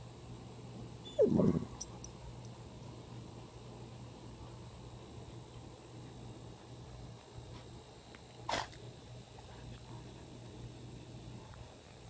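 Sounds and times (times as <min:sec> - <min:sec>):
dog short vocal sound: 0:01.1 - 0:01.8.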